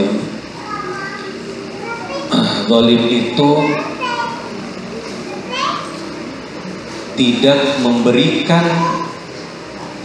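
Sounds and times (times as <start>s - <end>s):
children chattering: 0.4s - 7.4s.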